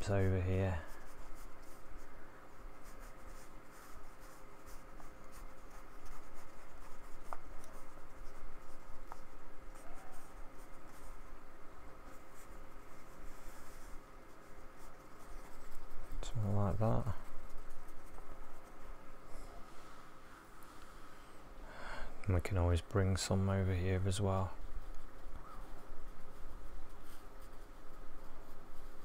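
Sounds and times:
paintbrush scratching on paper: 0.0s - 19.6s, 22.6s - 29.0s.

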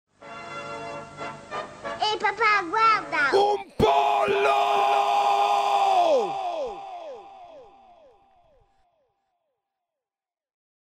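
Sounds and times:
person yelling with echoes: 3.3s - 8.4s.

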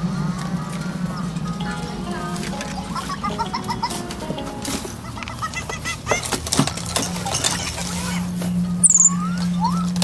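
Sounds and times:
steady low hum: 0.0s - 10.0s
baby monkeys squeaking: 8.8s - 10.0s.

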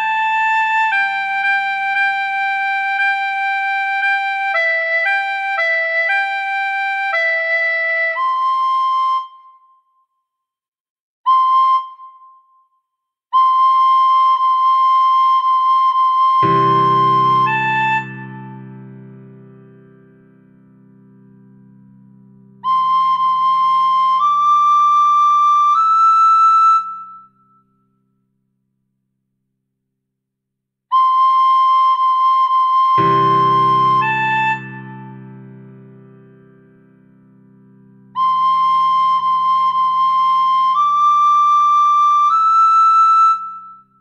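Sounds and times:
recorder playing high note: 16.4s - 19.5s, 33.0s - 36.0s.

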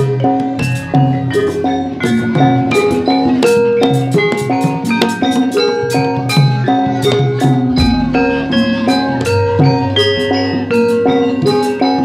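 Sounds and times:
drum strokes: 0.0s - 11.8s
gamelan metallophones melody: 0.0s - 12.0s
deep gong: 7.8s - 10.1s.

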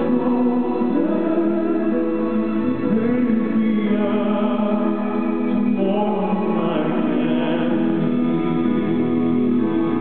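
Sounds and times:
cello and violins: 0.0s - 10.0s
man singing through speakers: 0.0s - 10.0s.

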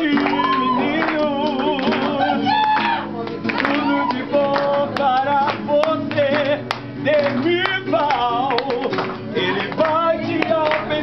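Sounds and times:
hand claps: 0.0s - 11.0s
person singing a celebration song: 0.0s - 11.0s.

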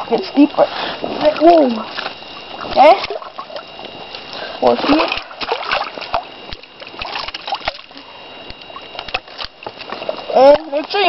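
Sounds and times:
water splashing around legs: 1.2s - 11.0s
small splashes: 1.3s - 3.7s, 4.3s - 10.7s
stick moving in water: 4.3s - 8.0s.

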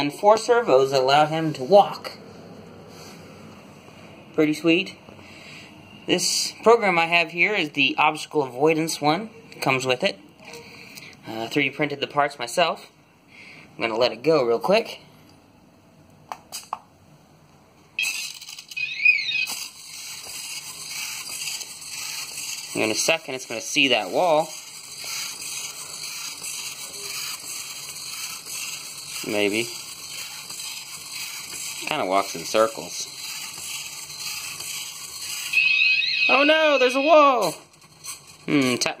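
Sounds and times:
servo motors whirring: 18.0s - 38.6s
gliding electronic tone: 35.2s - 37.4s.

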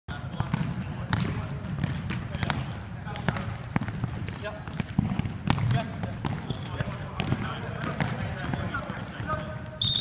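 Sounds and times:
sneakers squeaking: 0.1s - 10.0s
ball kicked and bouncing: 0.3s - 9.8s.

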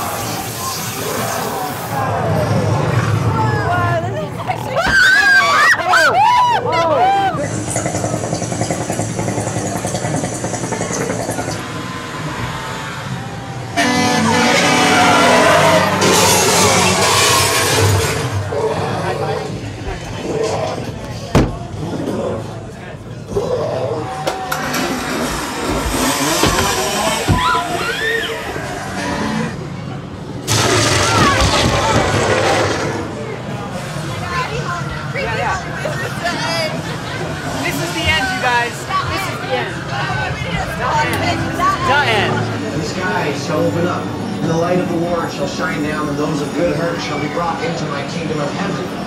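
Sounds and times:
hiss: 0.0s - 2.0s
voices: 10.7s - 49.0s
horn-like blare: 13.6s - 17.8s.

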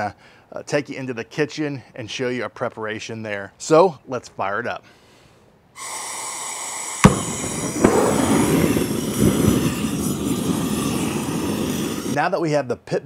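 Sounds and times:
gas hiss: 5.8s - 12.2s
torch flame rushing: 7.0s - 12.2s
torch ignition pop: 7.0s - 12.2s.

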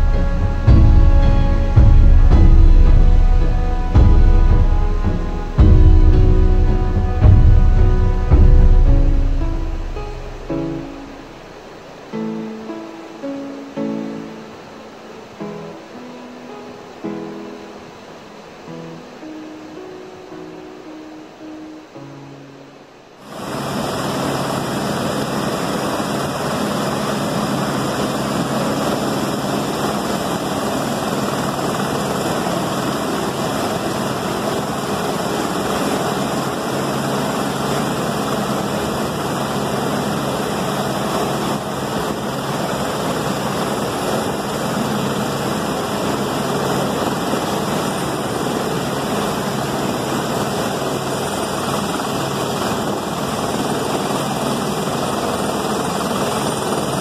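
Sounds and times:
helicopter hovering: 0.0s - 12.4s, 23.2s - 57.0s
flood water rushing over rocks: 22.8s - 54.6s.

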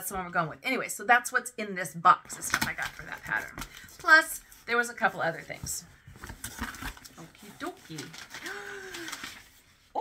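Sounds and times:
packaging rustling and crinkling: 2.4s - 9.8s.

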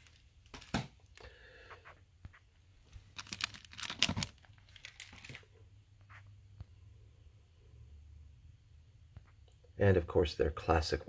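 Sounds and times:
record sleeves rustling and crinkling: 0.0s - 1.2s, 2.2s - 6.3s.

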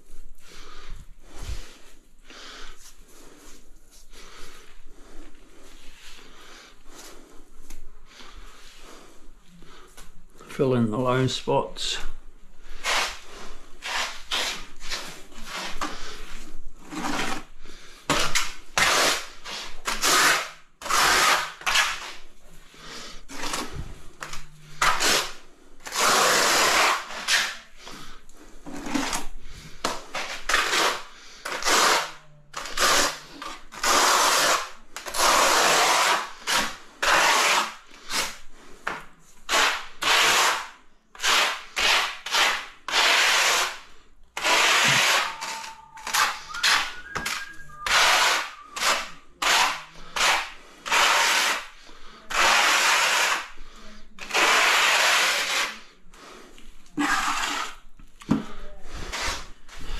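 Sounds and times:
trowel scraping mortar: 12.8s - 13.2s, 13.8s - 16.1s, 16.8s - 17.5s, 18.1s - 22.2s, 23.3s - 28.0s, 29.9s - 38.4s, 39.5s - 53.5s, 54.2s - 55.9s, 56.9s - 57.9s, 58.9s - 59.9s.

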